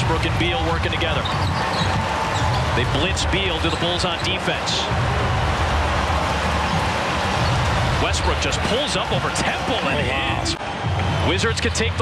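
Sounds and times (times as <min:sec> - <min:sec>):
basketball arena rumble: 0:00.0 - 0:12.0.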